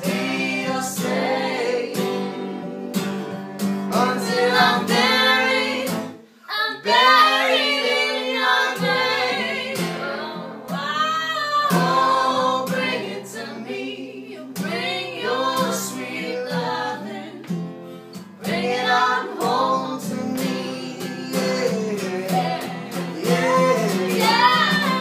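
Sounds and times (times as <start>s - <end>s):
person singing: 8.8s - 17.4s, 18.4s - 25.0s
strummed guitar chords: 19.4s - 25.0s.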